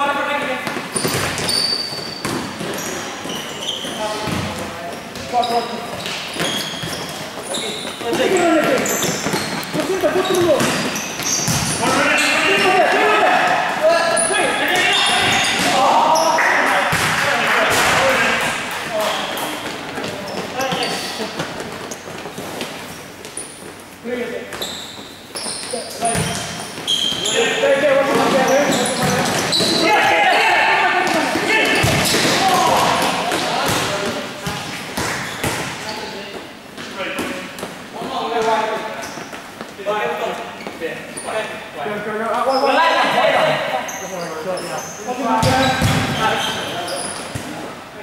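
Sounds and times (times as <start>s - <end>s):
ball bouncing on court: 0.6s - 12.0s, 14.7s - 15.9s, 16.8s - 22.7s, 25.3s - 27.4s, 28.1s - 29.8s, 31.0s - 35.8s, 45.4s - 46.5s
shoe squeaks on floor: 0.8s - 12.6s, 14.0s - 16.3s, 19.0s - 22.6s, 23.3s - 30.0s, 35.0s - 36.3s, 38.8s - 39.4s, 40.4s - 41.5s, 42.4s - 42.9s, 43.8s - 47.6s
players shouting in echoing hall: 7.5s - 19.7s, 27.1s - 34.4s, 41.4s - 46.9s.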